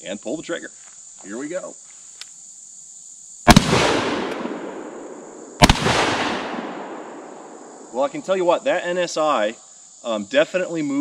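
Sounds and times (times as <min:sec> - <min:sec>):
shotgun shots echoing: 0:03.5 - 0:07.9.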